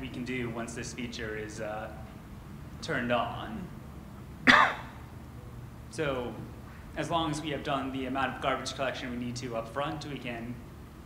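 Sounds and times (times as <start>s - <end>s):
man clearing throat: 4.4s - 5.0s.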